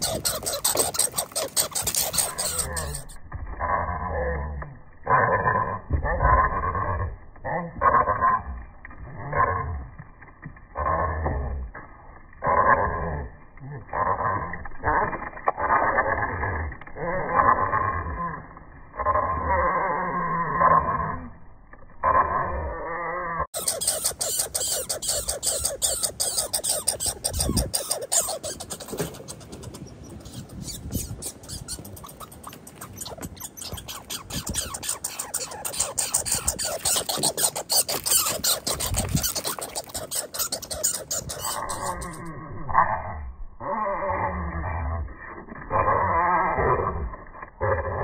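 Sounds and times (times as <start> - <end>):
squirrels giving harsh calls: 0.0 - 3.2, 23.6 - 42.3
squirrel rapid clicking chatter: 0.0 - 3.7, 23.5 - 42.3.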